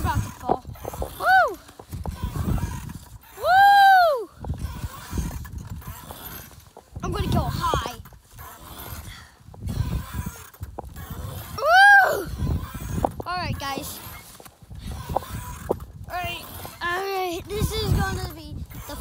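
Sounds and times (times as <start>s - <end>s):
high swing squeals: 0.0s - 19.0s
wind rumbling on microphone: 0.0s - 19.0s.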